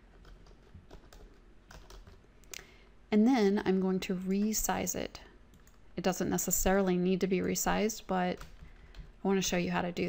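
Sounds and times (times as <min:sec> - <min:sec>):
faint keyboard typing: 0:00.0 - 0:02.9, 0:03.7 - 0:05.9, 0:06.6 - 0:09.2.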